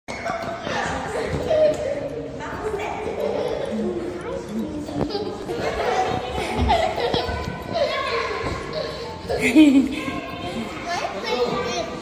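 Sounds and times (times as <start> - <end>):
children talking and laughing: 0.1 - 12.0.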